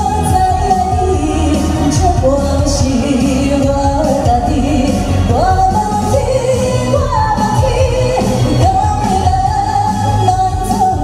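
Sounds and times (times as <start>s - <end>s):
amplified band: 0.0s - 11.0s
woman singing into a microphone: 0.0s - 11.0s.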